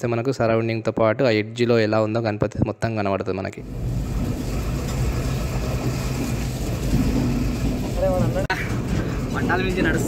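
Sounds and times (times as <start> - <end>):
train running rumble: 3.6 - 10.0.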